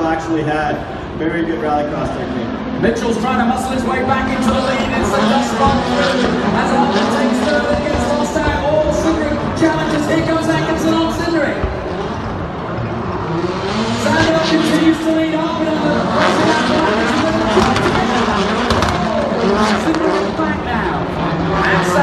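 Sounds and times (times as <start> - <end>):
race car engines revving: 0.0 - 22.0.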